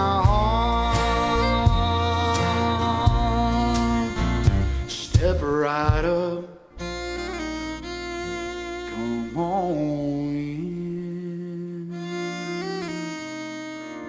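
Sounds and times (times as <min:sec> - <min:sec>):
pedal steel guitar sliding notes: 0:00.0 - 0:05.8, 0:06.7 - 0:11.1
strummed acoustic guitars: 0:00.0 - 0:11.0.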